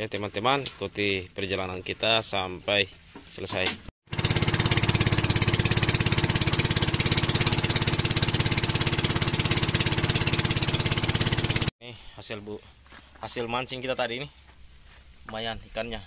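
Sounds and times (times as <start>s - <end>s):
small boat engine running: 4.1s - 11.7s.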